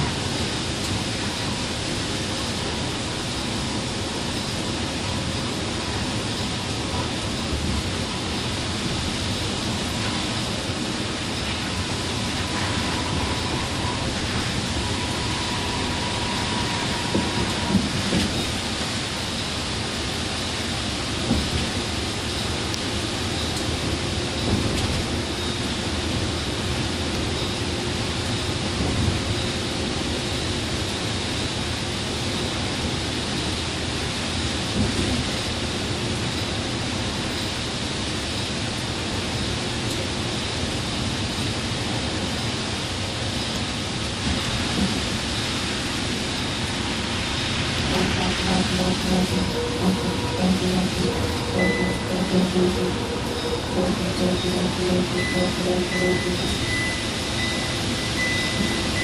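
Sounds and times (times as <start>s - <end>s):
rain: 0.0s - 59.0s
coach engine: 47.8s - 59.0s.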